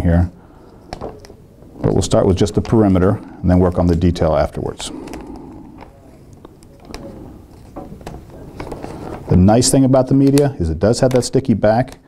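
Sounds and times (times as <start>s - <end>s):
film peeling with faint crackling: 0.7s - 12.0s.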